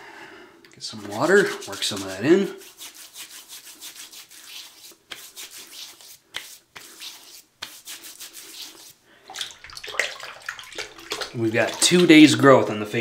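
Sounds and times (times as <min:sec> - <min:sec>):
wet hands rubbing face: 0:00.9 - 0:13.0.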